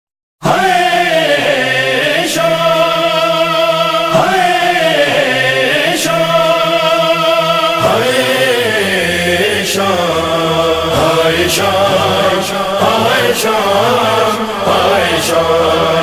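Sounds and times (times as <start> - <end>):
chorus chanting wordlessly: 0.4 - 16.0
solo voice reciting: 0.4 - 16.0.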